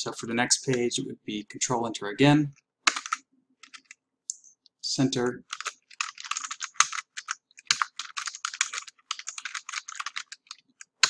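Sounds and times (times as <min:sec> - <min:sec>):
computer keyboard typing: 0:02.9 - 0:04.0, 0:05.3 - 0:11.0.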